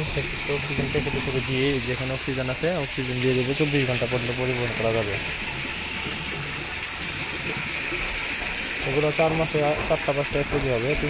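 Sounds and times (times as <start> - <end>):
running water rushing: 0.0 - 11.0.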